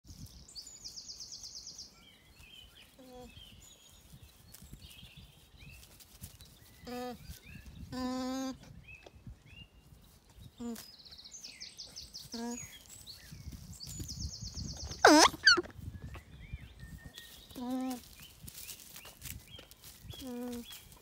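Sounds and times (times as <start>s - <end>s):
songbirds chirping: 0.1s - 21.0s
alpaca humming: 6.8s - 7.3s, 7.9s - 8.7s, 12.3s - 12.7s, 15.0s - 15.7s, 17.6s - 18.1s.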